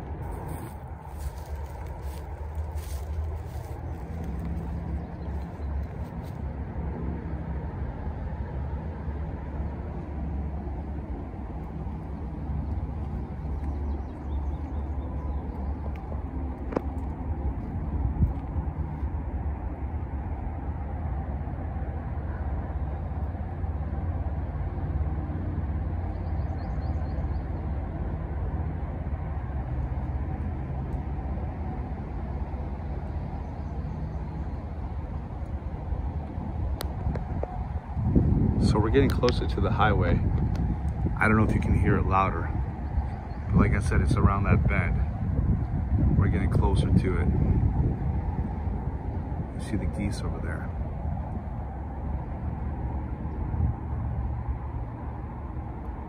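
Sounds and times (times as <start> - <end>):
distant highway traffic drone: 0.0 - 56.0.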